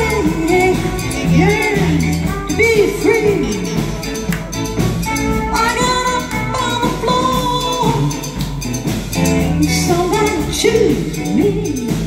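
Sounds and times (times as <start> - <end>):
woman singing into a microphone: 0.0 - 4.1, 5.3 - 8.5, 9.6 - 12.0
live band music: 0.0 - 12.0.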